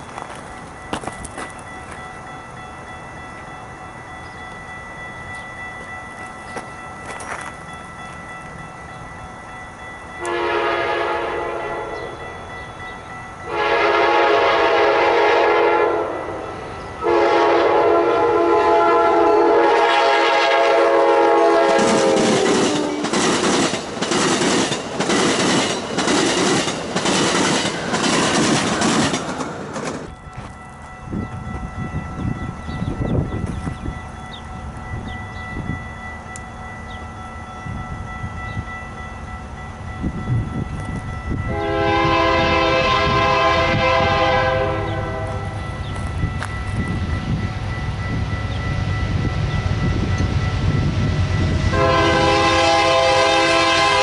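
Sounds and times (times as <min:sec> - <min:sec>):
train wheels clicking over rail joints: 0:00.0 - 0:02.2, 0:21.6 - 0:31.7
low train rumble: 0:00.0 - 0:54.0
train chime horn blasts: 0:10.1 - 0:23.2, 0:39.9 - 0:47.4, 0:48.0 - 0:54.0.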